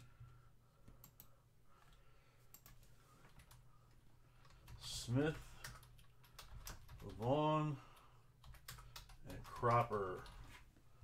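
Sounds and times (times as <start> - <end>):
low room hum: 0.0 - 11.0
computer mouse clicks: 0.9 - 1.3, 1.9 - 3.6.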